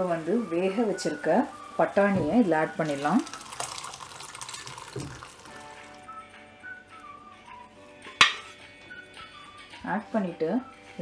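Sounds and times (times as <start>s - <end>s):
soft background music: 0.0s - 11.0s
liquid splashing into a pan: 2.8s - 5.9s.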